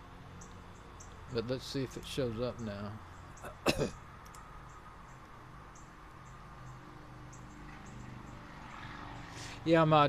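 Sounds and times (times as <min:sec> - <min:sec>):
man coughing: 0:03.4 - 0:04.0.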